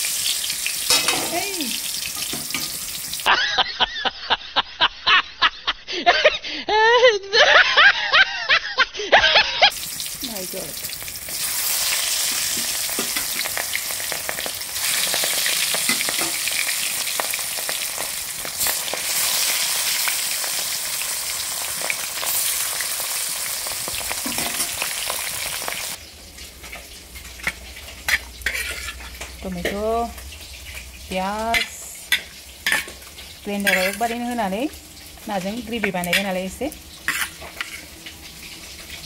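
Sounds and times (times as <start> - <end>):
fish sizzling in oil: 0.0 - 3.3, 9.6 - 39.0
metal spoon turning food in wok: 26.7 - 38.0.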